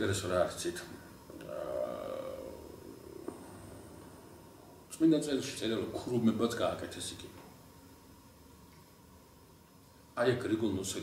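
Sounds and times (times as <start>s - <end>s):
man humming wordlessly: 1.3s - 4.5s.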